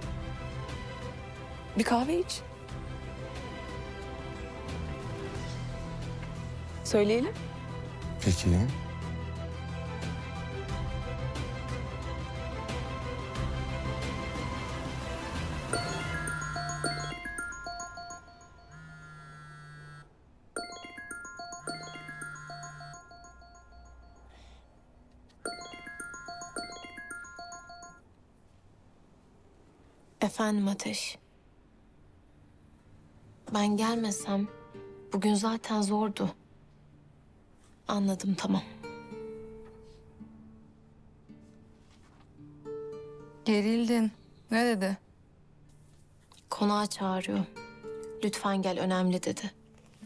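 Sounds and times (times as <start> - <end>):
marimba-like ringtone melody: 15.7 - 19.4, 20.6 - 24.4, 25.5 - 28.0
phone vibrating on wooden table: 18.7 - 20.1.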